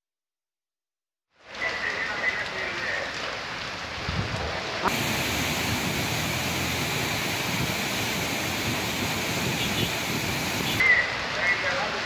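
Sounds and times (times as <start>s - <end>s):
waterfall rushing: 4.9s - 11.1s.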